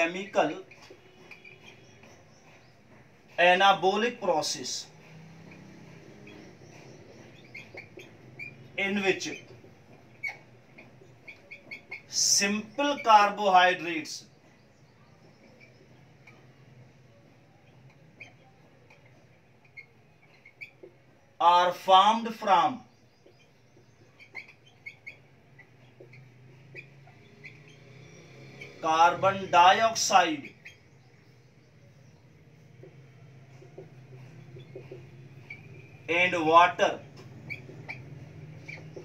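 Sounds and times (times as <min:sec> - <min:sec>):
whiteboard marker squeaking: 0:00.0 - 0:39.0.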